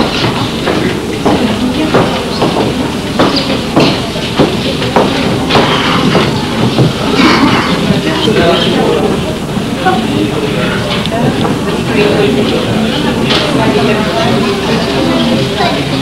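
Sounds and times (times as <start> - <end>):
many voices talking at once: 0.0 - 16.0.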